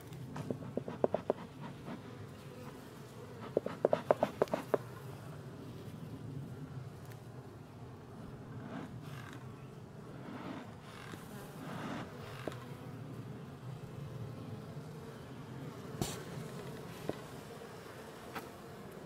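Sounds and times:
honeybees buzzing: 0:00.2 - 0:05.2, 0:07.6 - 0:19.0.

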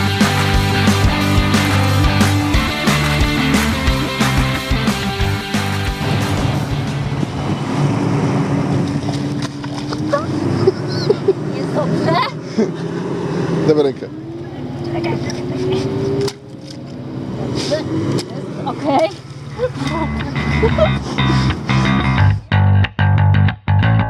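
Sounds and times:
music: 0:00.0 - 0:07.2, 0:19.8 - 0:24.0
engine running: 0:00.0 - 0:23.0
people laughing: 0:10.0 - 0:13.0, 0:19.6 - 0:22.1.

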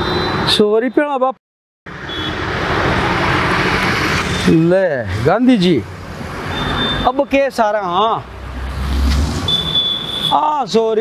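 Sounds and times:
road traffic rushing: 0:00.0 - 0:01.1, 0:01.9 - 0:11.0.

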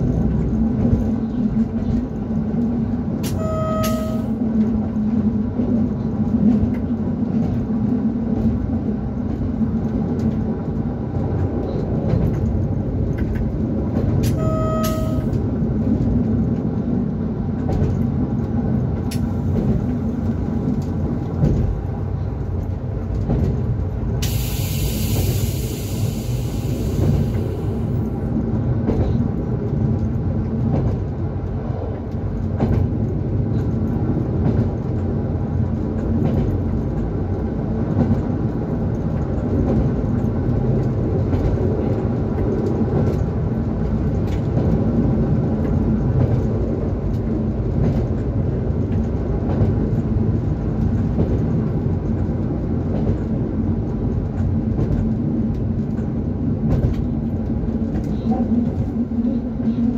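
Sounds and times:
rail rumble: 0:00.0 - 0:59.9
short electronic beeps: 0:03.2 - 0:04.4, 0:14.3 - 0:15.4
hiss: 0:24.2 - 0:27.9.

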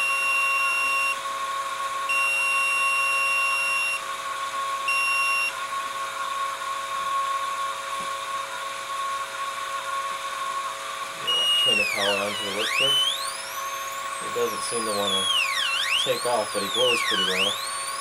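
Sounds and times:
electrical whine: 0:09.9 - 0:18.0
high beep-like tone: 0:11.2 - 0:17.9.

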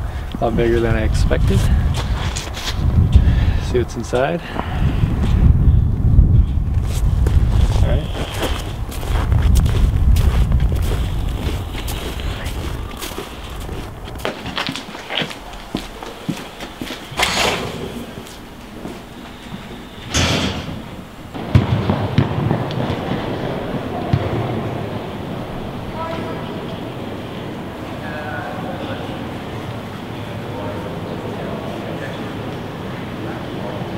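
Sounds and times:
footsteps on slushy pavement: 0:06.8 - 0:19.5
echoing voices in sports hall: 0:19.8 - 0:33.9
glass door opening: 0:20.0 - 0:21.1.

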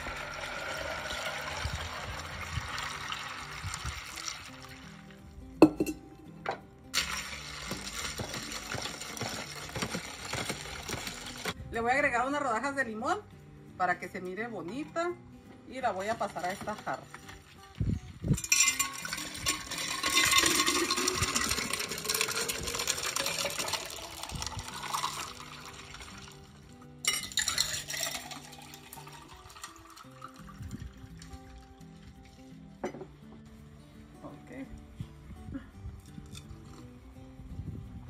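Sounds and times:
liquid pouring into a glass: 0:00.0 - 0:05.2, 0:07.0 - 0:09.3, 0:18.4 - 0:32.2
liquid pouring into a pitcher: 0:00.0 - 0:05.2, 0:07.0 - 0:11.6, 0:17.2 - 0:32.5.

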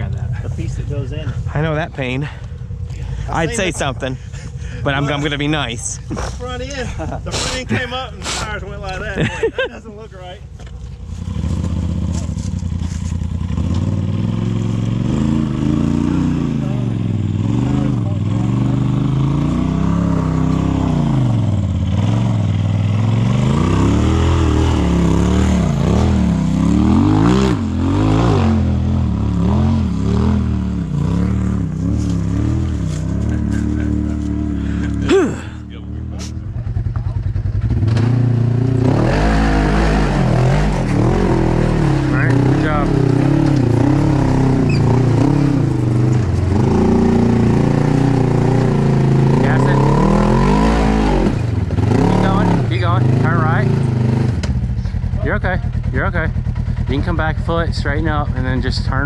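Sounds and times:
utv engine revving: 0:00.0 - 0:59.0.

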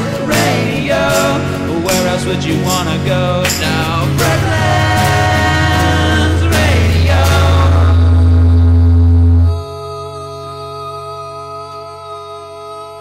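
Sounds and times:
voices holding a sung note: 0:00.0 - 0:08.2
acoustic guitar chord ringing: 0:00.0 - 0:11.6.

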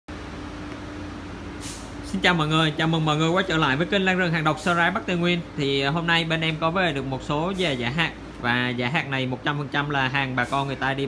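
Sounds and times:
short high hiss: 0:01.6 - 0:02.0.

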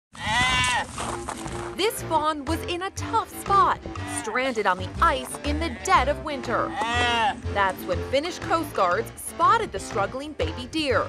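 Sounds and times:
deer fawn bleating: 0:00.2 - 0:01.0, 0:04.0 - 0:04.6, 0:05.5 - 0:07.4
music: 0:00.6 - 0:11.0.

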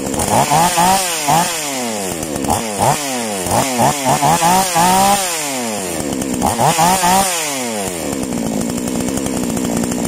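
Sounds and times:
chainsaw engine idling: 0:00.0 - 0:10.0.

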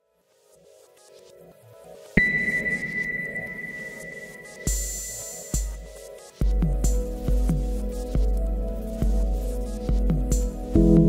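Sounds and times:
low hum: 0:02.2 - 0:05.4
high ringing ping: 0:02.2 - 0:06.0
sharp hit: 0:02.2 - 0:06.0.

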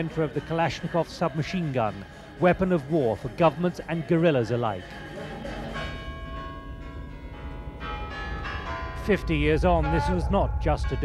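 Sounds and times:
bells ringing: 0:00.0 - 0:11.0
low rumble: 0:07.1 - 0:11.0.

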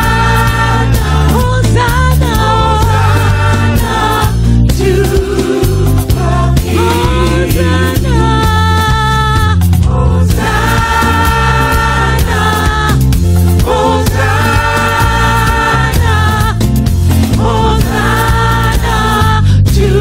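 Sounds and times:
choir singing held notes: 0:00.0 - 0:08.2, 0:09.8 - 0:16.6, 0:17.3 - 0:20.0.

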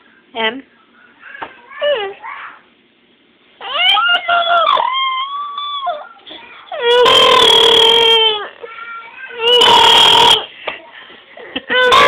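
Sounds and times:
infant crying: 0:06.7 - 0:08.6, 0:09.4 - 0:10.5, 0:11.7 - 0:12.0.

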